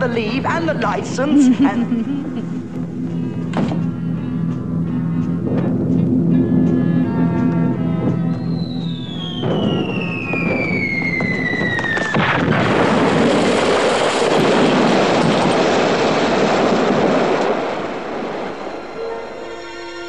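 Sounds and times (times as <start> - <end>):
falling bomb whistling: 6.4 - 14.4
explosion blast with rumble: 8.4 - 18.9.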